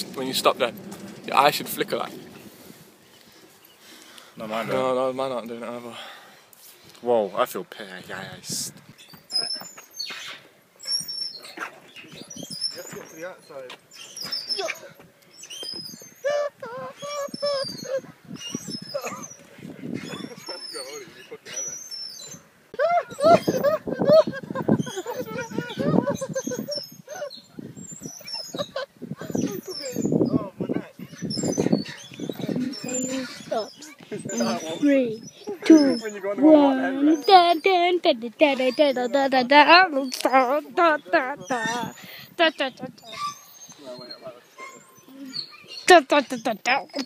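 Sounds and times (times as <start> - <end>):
voices making wavering calls: 9.0 - 47.0
young men laughing: 16.0 - 18.2, 18.8 - 21.8, 22.7 - 30.3, 33.9 - 34.8, 35.4 - 36.1
young men calling out: 32.4 - 41.9.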